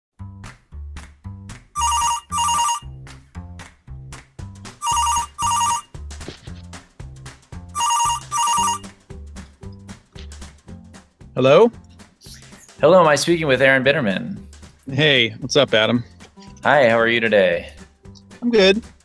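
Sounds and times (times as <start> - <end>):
background music with steady beat: 0.2 - 19.0
telephone ringing: 1.8 - 2.8, 4.8 - 5.9, 7.8 - 8.9.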